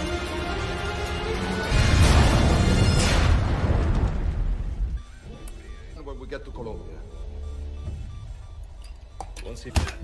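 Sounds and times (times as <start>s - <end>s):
dramatic film music: 0.0s - 9.6s.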